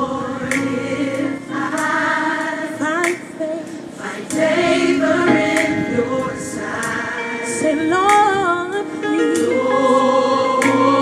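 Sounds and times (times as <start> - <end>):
gospel choir singing: 0.0 - 11.0.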